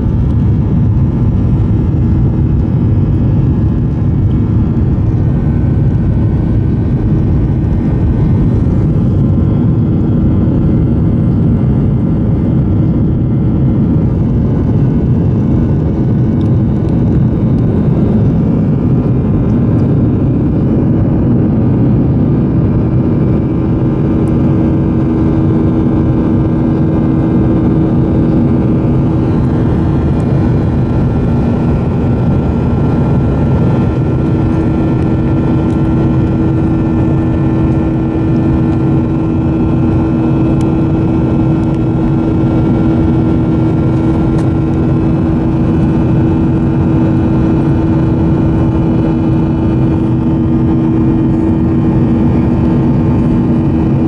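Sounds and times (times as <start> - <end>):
jet engine drone in cabin: 0.0 - 54.0.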